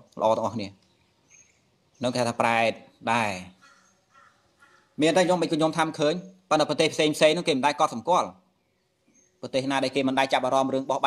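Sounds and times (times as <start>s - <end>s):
man preaching: 2.0s - 3.6s, 5.0s - 8.4s, 9.4s - 11.0s.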